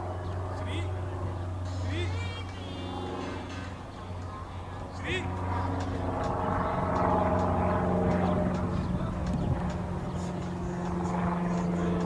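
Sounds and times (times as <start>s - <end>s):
faint distant voices: 0.0s - 12.0s
steady low hum: 0.0s - 12.0s.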